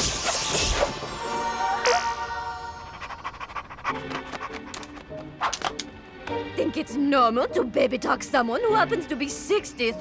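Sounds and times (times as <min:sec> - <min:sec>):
light background music: 0:00.0 - 0:10.0
cartoon dog panting: 0:02.8 - 0:05.1.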